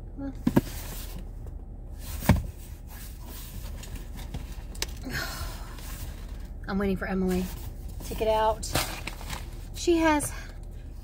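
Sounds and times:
cardboard box knocks and rustle: 2.2 - 2.6.

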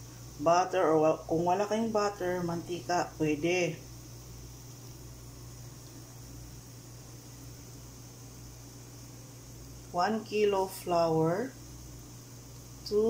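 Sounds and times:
food steamer hissing: 0.0 - 13.0.

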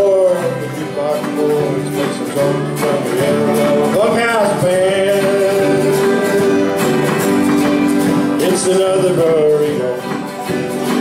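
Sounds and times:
acoustic guitars strumming: 0.0 - 11.0
person singing: 0.0 - 11.0
sliding lead guitar line: 0.0 - 11.0.

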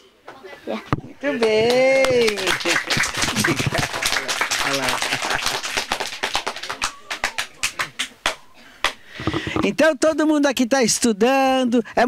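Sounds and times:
group clapping in applause: 1.3 - 9.0.

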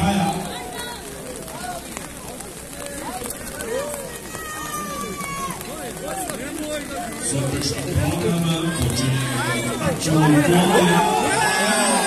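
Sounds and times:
spectators calling and shouting: 0.0 - 12.0.

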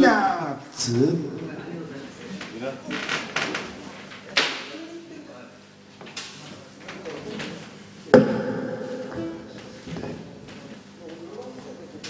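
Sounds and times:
guitar chord ringing: 8.2 - 10.6.

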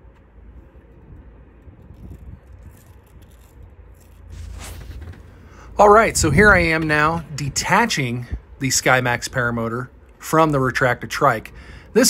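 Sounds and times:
wind rumble on microphone: 0.0 - 9.4.

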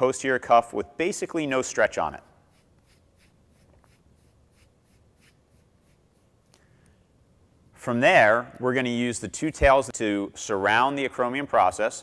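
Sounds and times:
hands rubbing tape on skin: 2.4 - 6.6.

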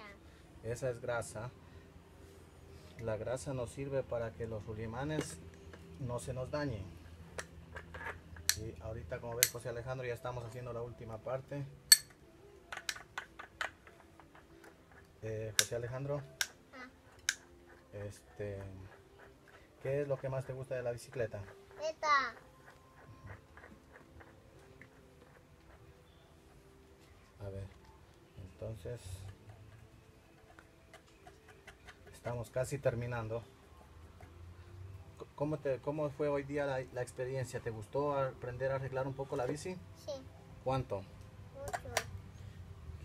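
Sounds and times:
hand tool clicking on bicycle hub: 7.3 - 9.7, 11.9 - 21.6.

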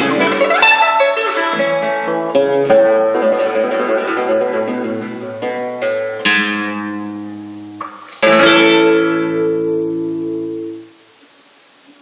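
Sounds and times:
nylon-string guitar chords: 0.0 - 11.2.

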